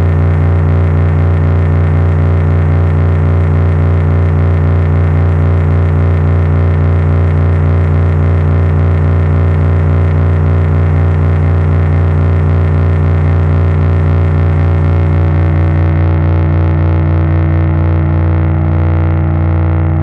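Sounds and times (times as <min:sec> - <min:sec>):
electric bass drone: 0:00.0 - 0:20.0.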